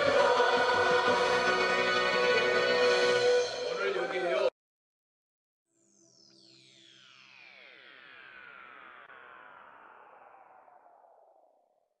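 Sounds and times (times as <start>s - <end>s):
electronic tones sliding downward: 5.9s - 11.9s.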